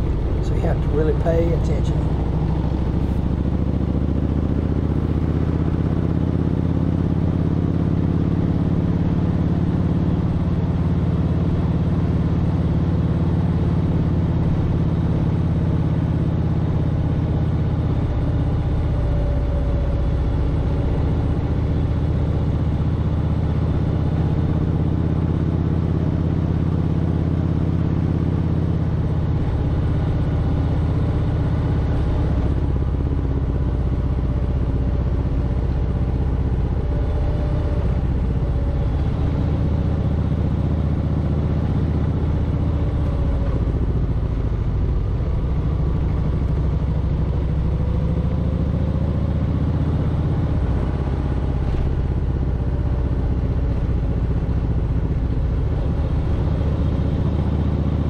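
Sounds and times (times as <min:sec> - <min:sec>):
motorcycle engine droning: 0:00.0 - 0:58.0
road and wind noise: 0:00.0 - 0:58.0.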